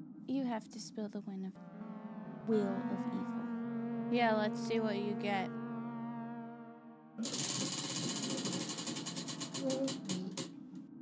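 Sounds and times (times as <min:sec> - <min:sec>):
prize wheel pointer clicking: 0:07.2 - 0:10.5.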